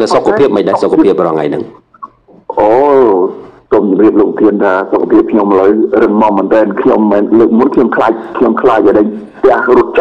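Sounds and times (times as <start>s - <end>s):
man talking into microphone: 0.0s - 10.0s.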